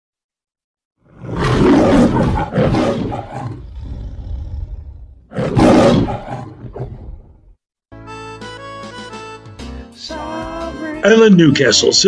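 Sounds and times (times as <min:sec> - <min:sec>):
lion roaring: 0:01.0 - 0:07.6.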